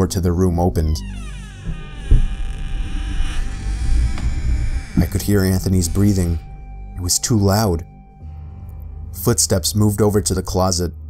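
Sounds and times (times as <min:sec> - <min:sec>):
heavy low rumble: 0:00.9 - 0:10.4
hissy buzzing layer: 0:01.2 - 0:07.3
dull thud: 0:01.6 - 0:04.8.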